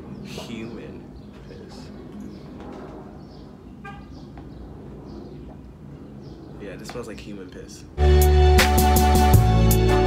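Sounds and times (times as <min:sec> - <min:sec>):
birds chirping: 0:00.0 - 0:08.0.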